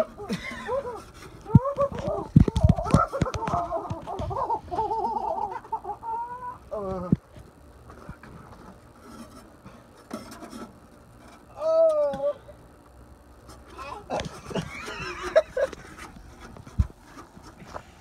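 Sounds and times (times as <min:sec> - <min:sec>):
people laughing hard: 0:00.0 - 0:01.1, 0:14.0 - 0:16.0.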